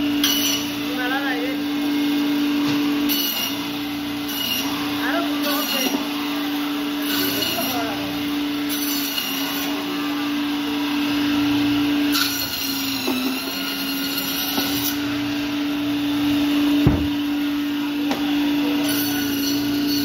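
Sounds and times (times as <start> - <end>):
band saw cutting fish: 0.0 - 20.0
thump: 16.8 - 17.2.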